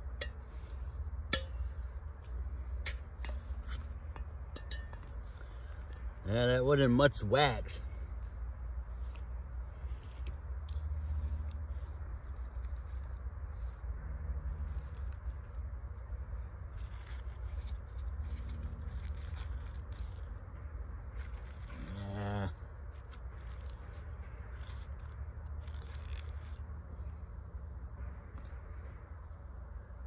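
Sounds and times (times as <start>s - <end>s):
crackles and rustles of shavings: 8.8s - 28.6s.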